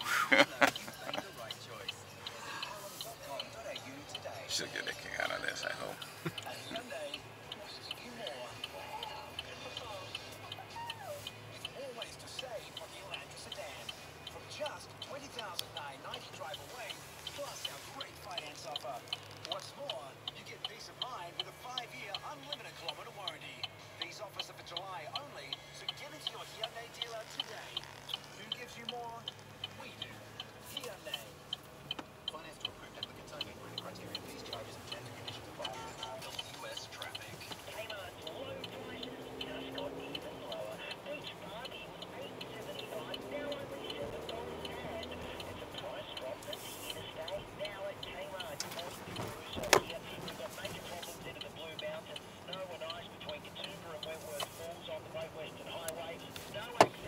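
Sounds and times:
turn signal ticking: 0.0 - 57.0
faint talk: 0.2 - 11.9.

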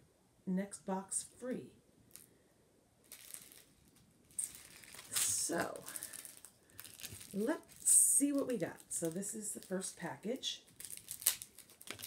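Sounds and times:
paper card rustling: 3.1 - 9.9, 10.6 - 12.0.

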